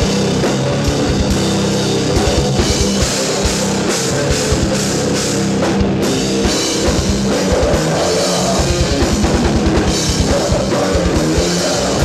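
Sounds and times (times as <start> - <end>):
bass guitar: 0.0 - 12.0
distorted electric guitar: 0.0 - 12.0.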